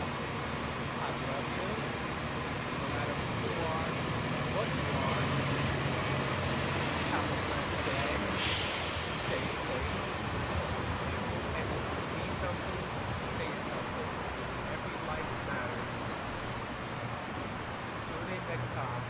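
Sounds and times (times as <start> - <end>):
bus pulling away: 0.0 - 18.6
roadway traffic noise: 0.0 - 19.0
air brake hiss: 8.2 - 9.4.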